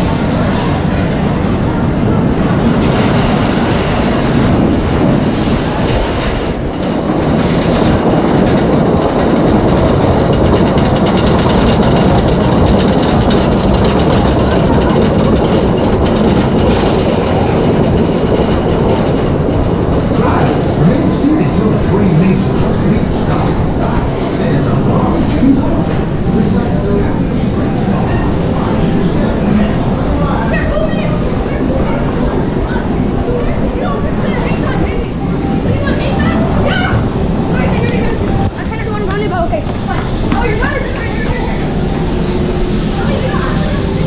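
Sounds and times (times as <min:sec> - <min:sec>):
roller coaster rumble and clatter: 0:00.0 - 0:44.0.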